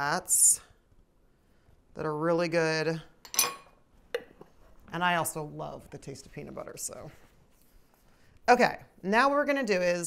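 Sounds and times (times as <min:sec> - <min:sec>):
metal spoon clinking on plate: 0:03.2 - 0:03.8.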